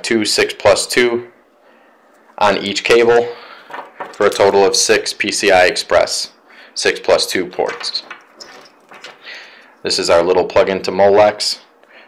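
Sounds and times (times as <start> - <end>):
man speaking: 0.0 - 1.4, 2.4 - 3.5, 4.2 - 8.1, 9.8 - 11.7
cables rustling: 2.1 - 5.2, 7.5 - 9.9.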